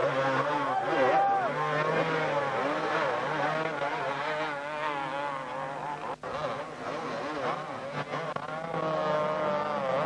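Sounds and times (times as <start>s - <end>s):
motocross bikes revving: 0.0s - 10.0s.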